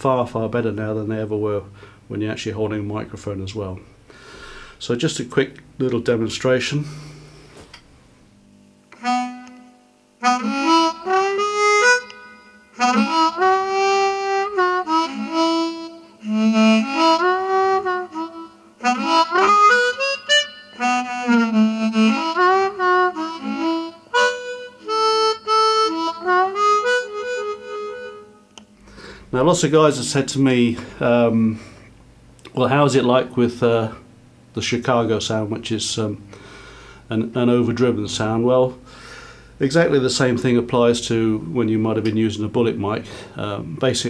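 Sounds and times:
harmonica with bent notes: 0:08.9 - 0:29.4.

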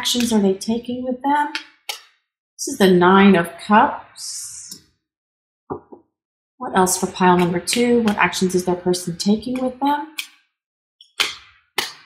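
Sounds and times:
cards snapping: 0:01.6 - 0:02.2, 0:11.0 - 0:12.0.

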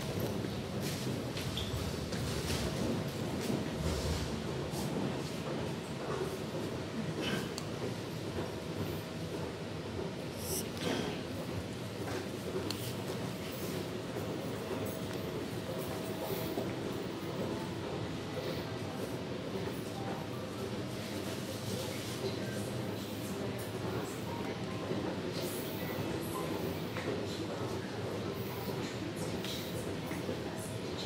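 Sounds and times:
station ambient noise: 0:00.0 - 0:31.0.

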